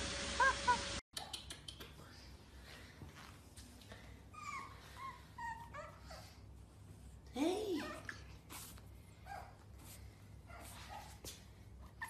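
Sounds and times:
puppy whining: 4.3 - 6.7.

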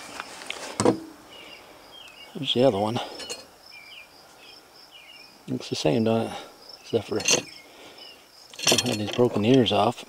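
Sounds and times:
insects trilling and chirping: 0.0 - 10.0
metal parts clicking: 7.1 - 7.6, 8.5 - 9.9.

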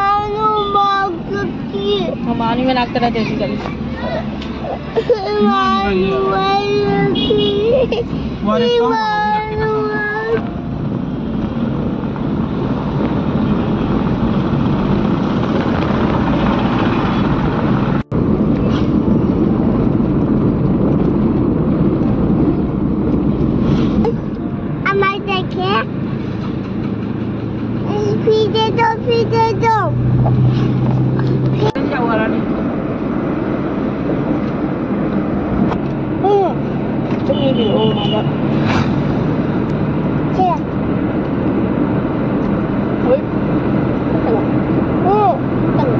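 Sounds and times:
child's high voice: 0.0 - 2.2, 3.2 - 7.9, 24.8 - 25.9, 27.9 - 30.0, 40.3 - 40.7
car road and engine noise: 0.0 - 45.9.

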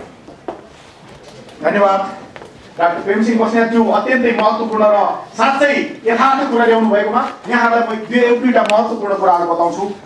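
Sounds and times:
man speaking: 1.6 - 10.0.

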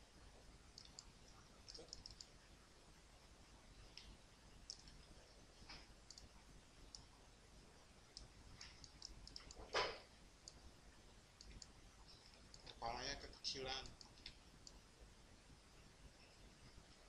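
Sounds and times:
low room hiss: 0.0 - 17.0
computer mouse clicks: 0.8 - 2.3, 4.0 - 5.1, 5.7 - 7.1, 8.1 - 9.8, 10.4 - 10.6, 11.4 - 11.8, 12.4 - 12.8, 13.8 - 14.8.

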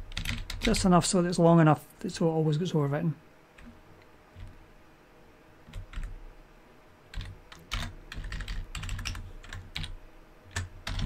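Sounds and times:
computer keyboard typing: 0.0 - 0.9, 3.6 - 4.6, 5.6 - 6.2, 7.1 - 11.0.

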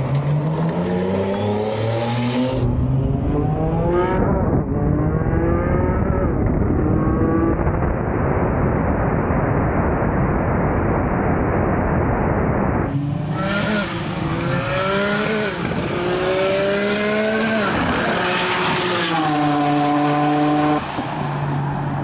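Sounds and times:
car engine at full throttle: 0.0 - 22.0.

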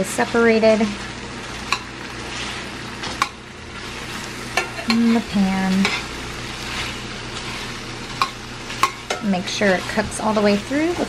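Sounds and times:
meat sizzling in a frying pan: 0.0 - 11.0.

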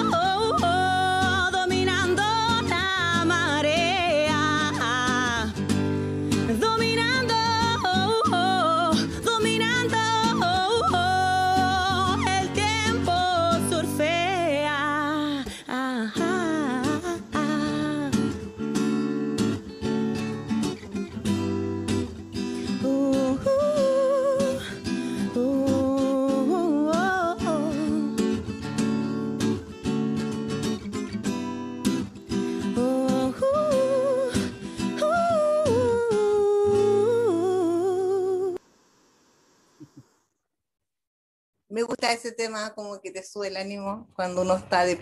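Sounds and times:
woman singing: 0.0 - 18.6, 22.6 - 28.4, 32.4 - 38.6
acoustic guitar: 0.0 - 38.6.

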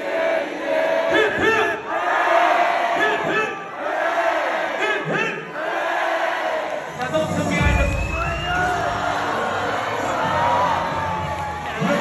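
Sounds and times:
crowd shouting together: 0.0 - 6.9, 8.5 - 12.0.

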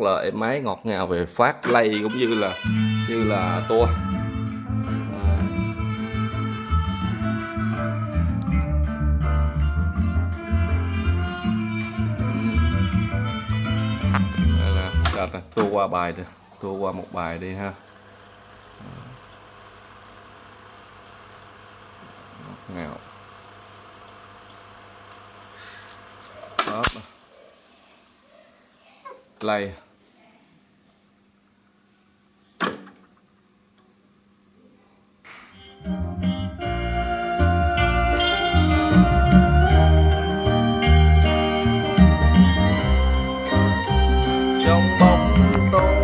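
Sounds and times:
tape deck winding whir: 1.6 - 8.7, 10.3 - 15.6, 16.2 - 27.3
guitar-led song with bass: 1.7 - 15.3, 35.6 - 46.0
tape transport clunk: 14.0 - 15.8.

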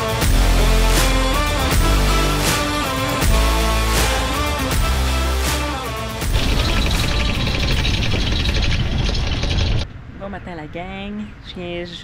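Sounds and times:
electric anchor windlass hauling chain: 6.3 - 9.8
woman's voice: 10.2 - 12.0.

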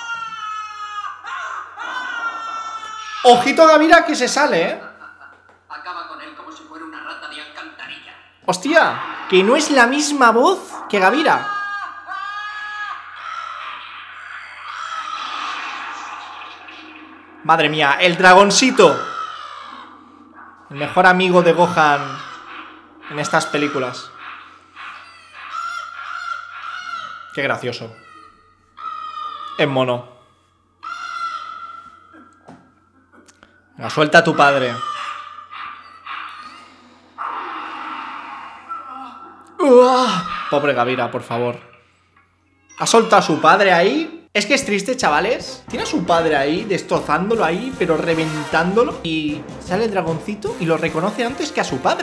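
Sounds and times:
hoarse creature-like cries: 0.0 - 5.0, 8.5 - 41.9, 42.6 - 44.1.

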